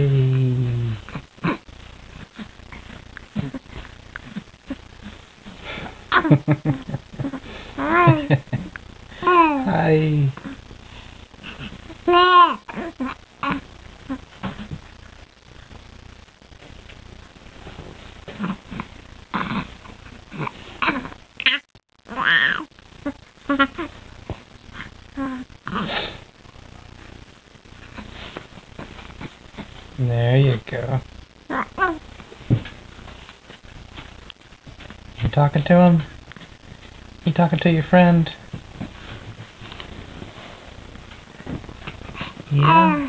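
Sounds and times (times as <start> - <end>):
baby cooing and grunting: 0.0 - 1.6, 3.3 - 3.6, 7.2 - 8.3, 9.2 - 10.6, 11.4 - 14.8, 18.3 - 23.9, 25.1 - 26.1, 31.5 - 32.0, 42.2 - 43.0
baby laughing and cooing: 6.1 - 9.6, 12.1 - 13.6.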